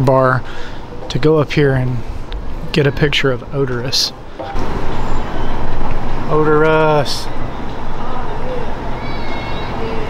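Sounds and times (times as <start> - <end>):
road traffic noise: 0.0 - 10.0.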